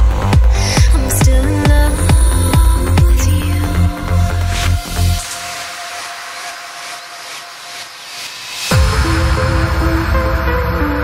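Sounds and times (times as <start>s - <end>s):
white-noise sweep: 3.5s - 11.0s.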